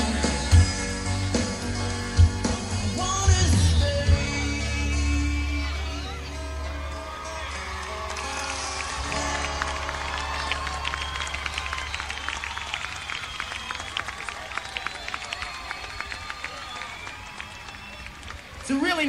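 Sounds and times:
crowd shouting: 5.9 - 18.6
crowd applauding: 6.0 - 19.0.

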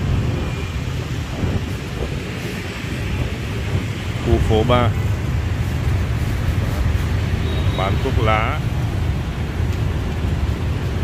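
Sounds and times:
motorbike traffic rumble: 0.0 - 11.0.

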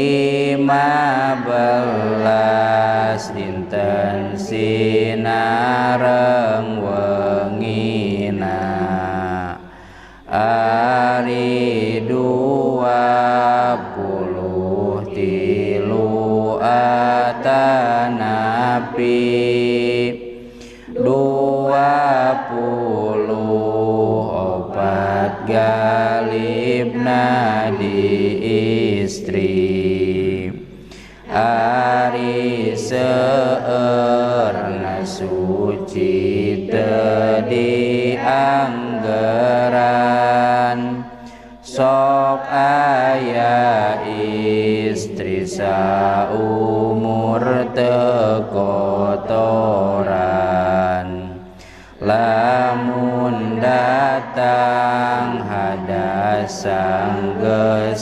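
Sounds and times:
man chanting: 0.0 - 9.6, 10.3 - 20.3, 20.9 - 30.6, 31.3 - 58.0.

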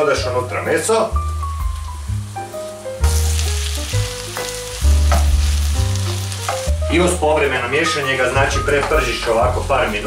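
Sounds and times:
background music with bass notes: 0.0 - 10.0
meat sizzling in a pot: 0.0 - 10.0.

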